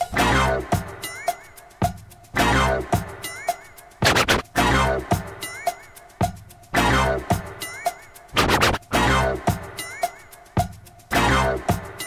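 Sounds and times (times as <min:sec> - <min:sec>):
drum beat: 0:00.0 - 0:12.0
turntable record scratching: 0:04.0 - 0:04.8, 0:08.3 - 0:09.5.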